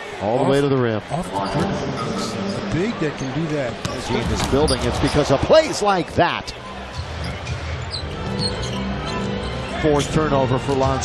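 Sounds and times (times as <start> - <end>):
crowd noise: 0.0 - 11.0
arena music: 1.0 - 5.4, 6.4 - 11.0.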